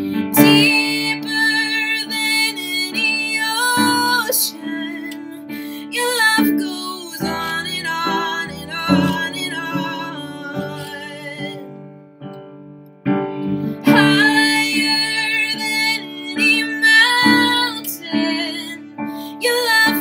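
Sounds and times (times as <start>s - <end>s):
piano chords: 0.0s - 20.0s
woman singing: 0.2s - 11.9s, 13.8s - 20.0s.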